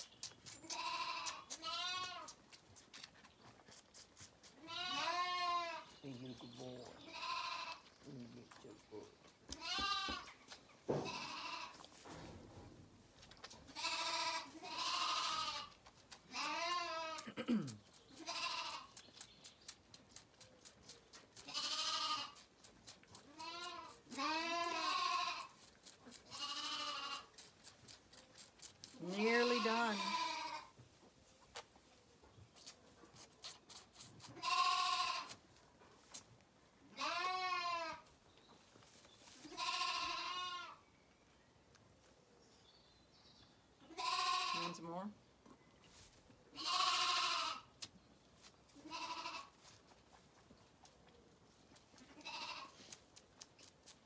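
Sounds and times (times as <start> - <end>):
lambs bleating: 0.7 - 2.4, 4.6 - 5.9, 7.0 - 7.9, 9.5 - 10.3, 11.0 - 11.8, 13.7 - 17.3, 18.2 - 19.0, 21.4 - 22.4, 23.3 - 25.6, 26.2 - 27.4, 29.0 - 30.7, 34.2 - 35.4, 37.0 - 38.1, 39.5 - 40.8, 43.9 - 44.8, 46.6 - 47.7, 48.8 - 49.6, 52.0 - 52.9.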